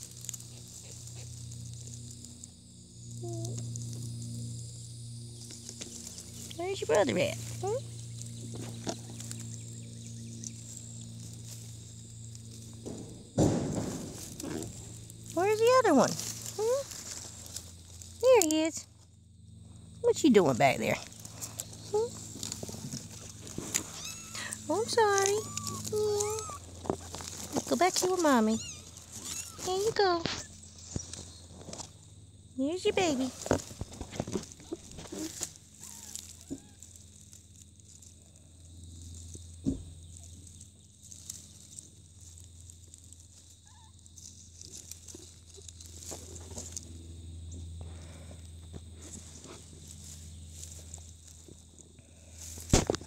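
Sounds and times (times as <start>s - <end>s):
hand rustling through leaf litter: 0.0s - 1.9s, 14.0s - 18.4s, 21.0s - 32.0s, 48.9s - 53.0s
rustling of dead leaves: 0.0s - 53.0s
steady low hum: 0.0s - 53.0s
sharp thump: 12.9s - 14.6s.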